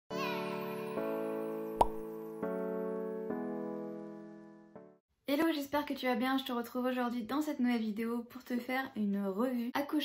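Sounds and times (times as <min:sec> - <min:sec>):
jingle music with held chords: 0:00.2 - 0:04.8
sharp pop sound effect: 0:01.8 - 0:02.0.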